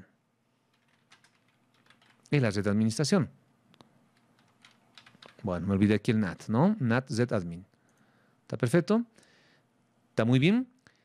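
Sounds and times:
keyboard typing: 0:00.7 - 0:02.3, 0:04.2 - 0:05.5.

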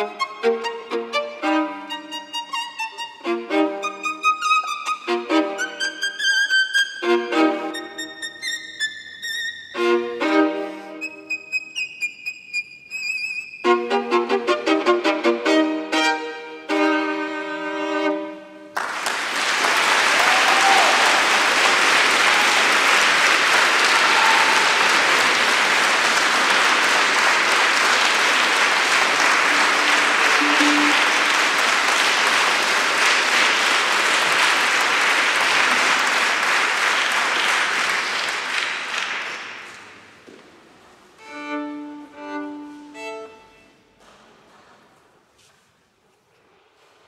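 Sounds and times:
solo violin: 0:00.0 - 0:18.7, 0:29.5 - 0:31.6, 0:41.2 - 0:44.0
audience applause: 0:18.8 - 0:40.0.

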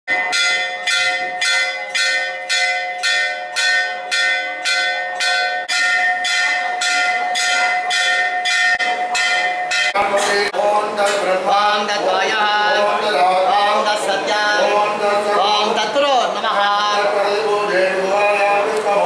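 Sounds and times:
temple bell ringing: 0:00.1 - 0:11.2.

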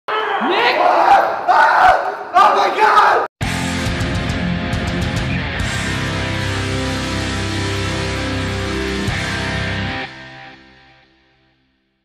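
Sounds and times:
people yelling: 0:00.1 - 0:03.3.

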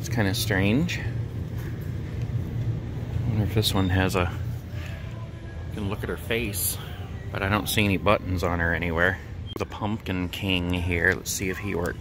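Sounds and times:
store background hum: 0:00.0 - 0:12.0.

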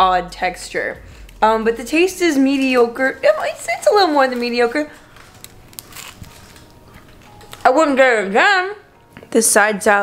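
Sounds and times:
faint crackles: 0:02.5 - 0:07.7
person chewing pizza: 0:04.9 - 0:07.6.

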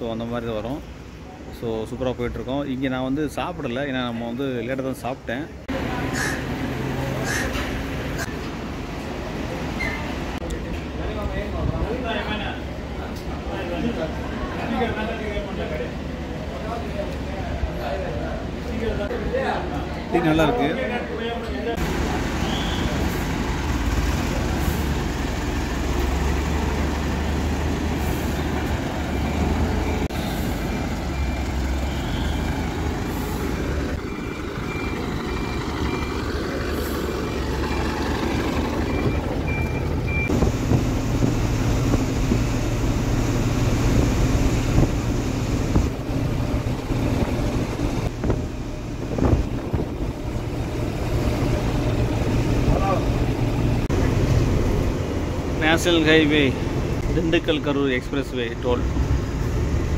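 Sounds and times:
road noise: 0:00.0 - 0:59.9
diesel engine droning: 0:21.7 - 0:59.9.

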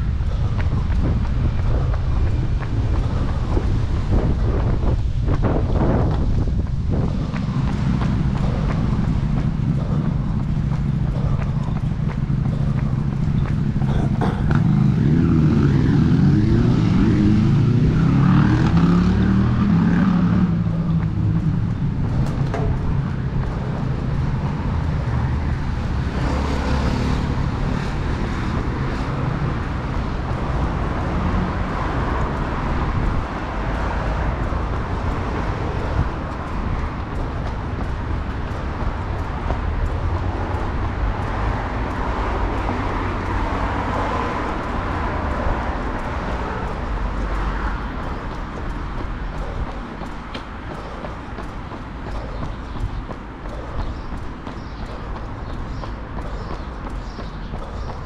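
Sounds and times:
city road traffic: 0:00.0 - 0:58.0.

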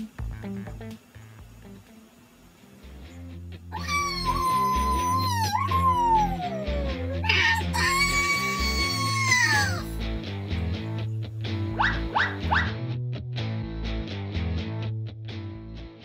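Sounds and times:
background music with bass: 0:00.0 - 0:16.0
high voice wailing: 0:03.7 - 0:10.0.

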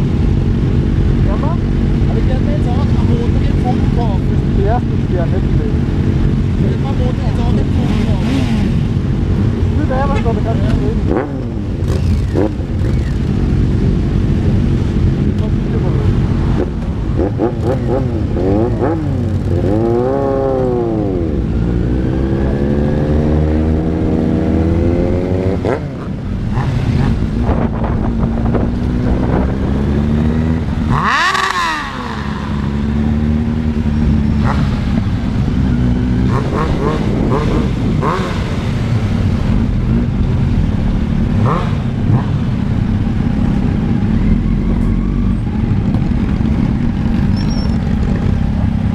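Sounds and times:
motorcycle engines revving: 0:00.0 - 0:48.9.

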